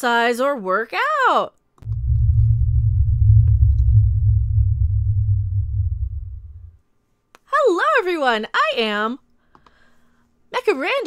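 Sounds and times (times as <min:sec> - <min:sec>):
deep rumble: 0:01.8 - 0:06.8.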